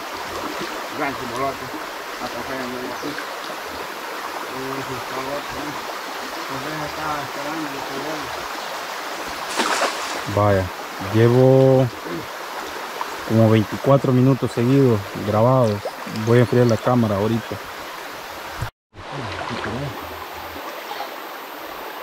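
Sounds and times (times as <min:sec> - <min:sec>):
river water rushing: 0:00.0 - 0:22.0.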